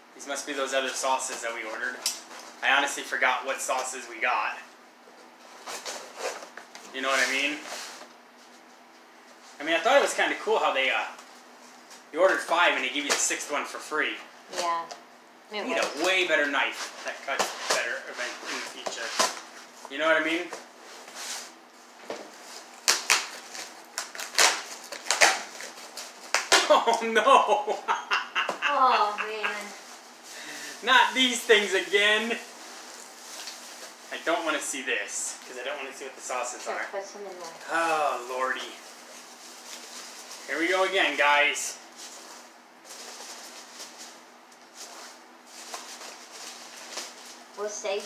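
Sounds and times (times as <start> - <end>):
packing tape tearing: 22.7 - 26.8.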